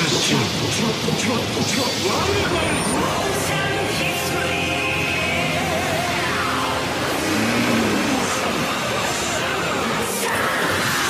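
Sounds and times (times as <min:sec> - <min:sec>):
background music: 0:00.0 - 0:11.0
electronic rush sound effect: 0:01.6 - 0:11.0
low hum: 0:01.8 - 0:09.4.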